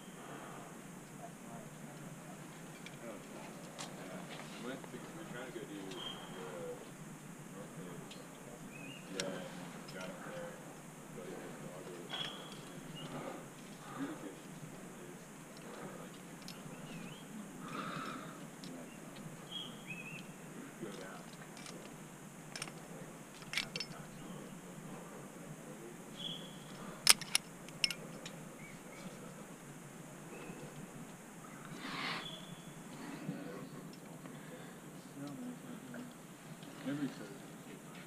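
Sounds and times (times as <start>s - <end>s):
steady hiss: 0.0s - 38.0s
climbing gear clicks: 20.9s - 24.1s, 26.6s - 29.2s.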